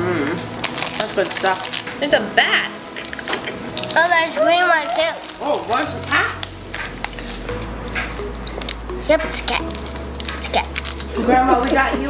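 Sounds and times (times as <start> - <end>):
plastic bag crinkling: 0.5 - 7.5, 9.6 - 12.0
squishy gummy candy: 0.6 - 2.0.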